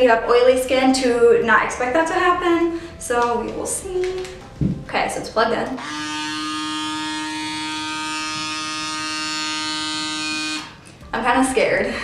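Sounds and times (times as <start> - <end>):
small suction motor buzzing: 5.8 - 10.8.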